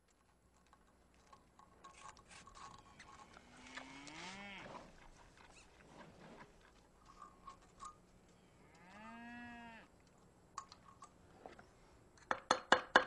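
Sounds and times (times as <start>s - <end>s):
faint outdoor background: 0.0s - 13.0s
cow mooing: 3.5s - 4.8s, 8.7s - 9.9s.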